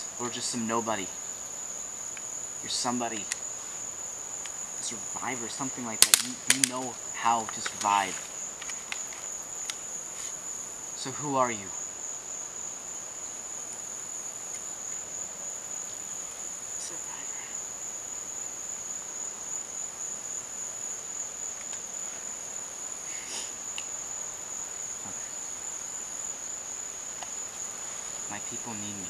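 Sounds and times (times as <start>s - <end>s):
faint outdoor hiss: 0.0s - 29.0s
insects trilling: 0.0s - 29.0s.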